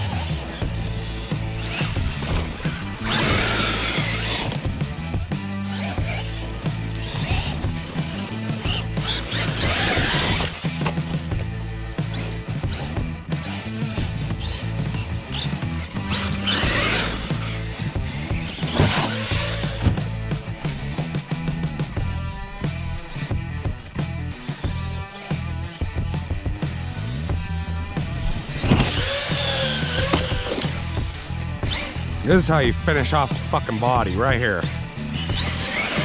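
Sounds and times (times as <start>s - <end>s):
stepping bass line: 0.0s - 35.7s
rock music with guitar: 0.0s - 36.0s.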